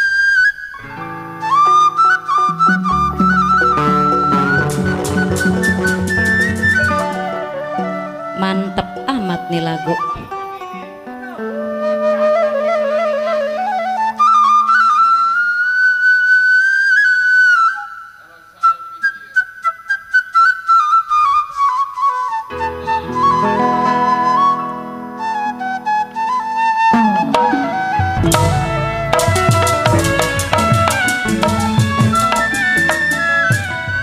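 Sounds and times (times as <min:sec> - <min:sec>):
bamboo flute melody: 0:00.0 - 0:34.0
lower instruments playing: 0:00.8 - 0:15.1, 0:22.5 - 0:34.0
sharp percussion strokes: 0:04.5 - 0:07.6, 0:27.0 - 0:34.0.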